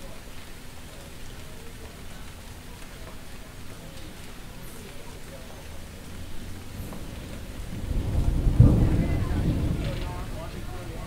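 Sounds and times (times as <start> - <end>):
steady rain: 0.0 - 11.0
thunder rumbling: 6.0 - 11.0.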